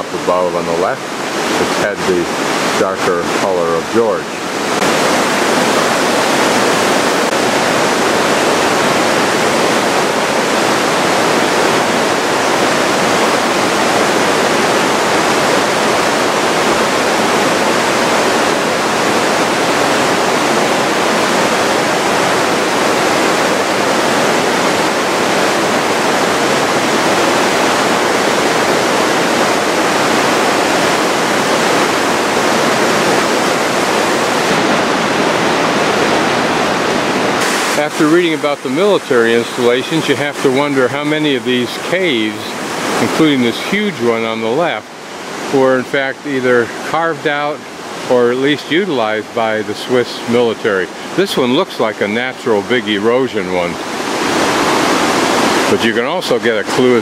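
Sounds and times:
river water rushing: 0:00.0 - 0:57.0.

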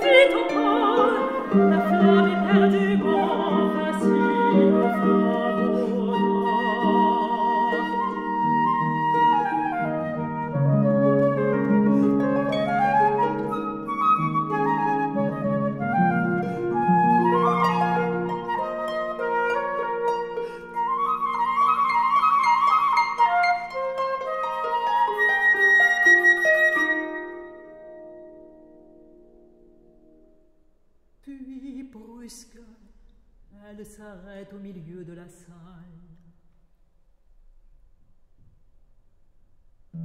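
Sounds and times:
flute playing: 0:00.0 - 0:28.6
harp playing: 0:00.0 - 0:30.5.

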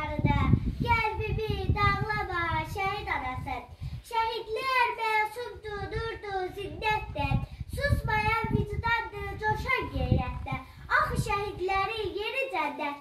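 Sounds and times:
girl reciting a poem: 0:00.0 - 0:13.0.

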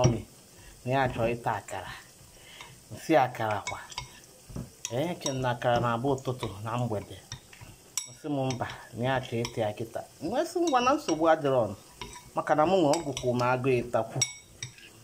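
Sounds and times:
spoon stirring thick batter: 0:10.4 - 0:15.0
spoon clinking on bowl: 0:12.0 - 0:12.3, 0:14.2 - 0:14.9.

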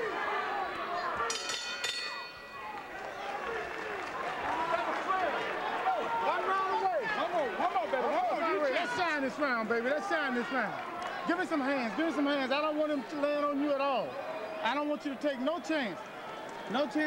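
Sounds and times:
noisy arena crowd: 0:00.0 - 0:17.0
boxing ring bell: 0:01.3 - 0:02.7.

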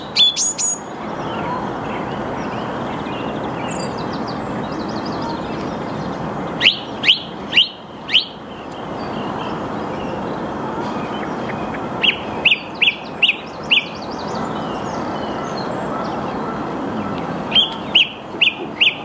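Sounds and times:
song thrush singing: 0:00.0 - 0:19.0.

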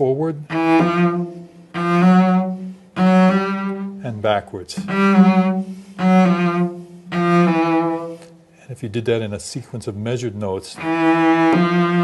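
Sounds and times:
bowed cello notes with vibrato: 0:00.0 - 0:08.3, 0:10.7 - 0:12.0.

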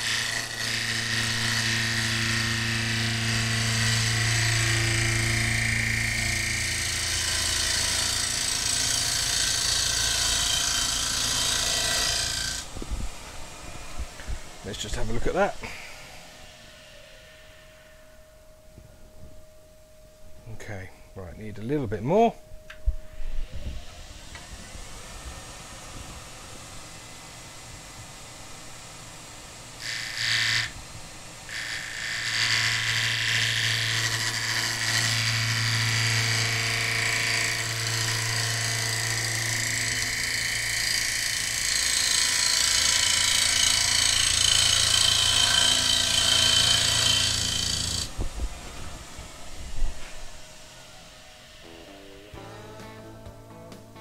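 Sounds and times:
gouge cutting wood on lathe: 0:00.0 - 0:12.7, 0:29.8 - 0:30.8, 0:31.5 - 0:48.2
wood lathe running: 0:00.0 - 0:12.7, 0:29.5 - 0:48.2.

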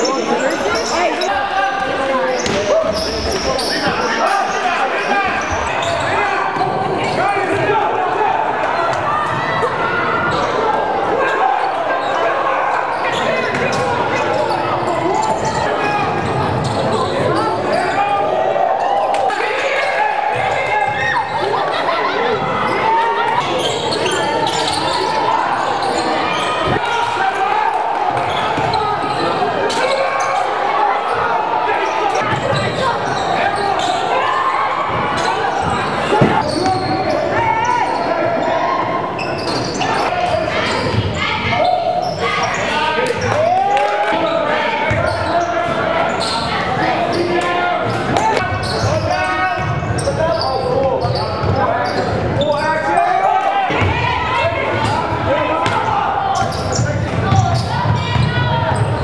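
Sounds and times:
babble of voices and shouts: 0:00.0 - 0:59.0.

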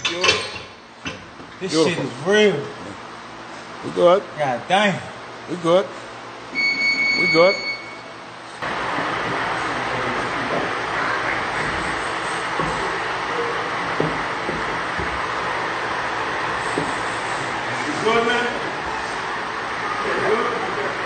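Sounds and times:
large fan rushing: 0:08.0 - 0:21.0.

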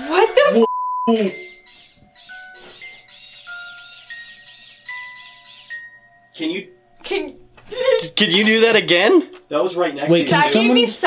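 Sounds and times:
chiming electronic tune: 0:01.1 - 0:07.0.

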